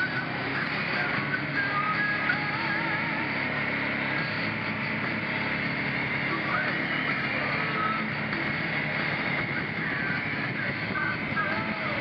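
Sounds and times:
atv engine running: 0.0s - 12.0s.

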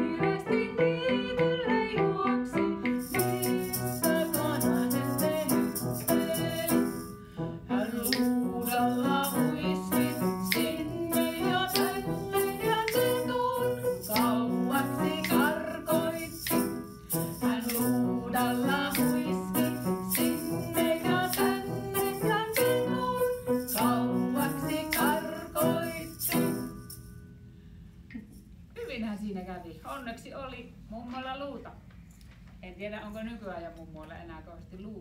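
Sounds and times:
children's song with accompaniment: 0.0s - 27.1s
shaken rattles: 2.2s - 27.2s.

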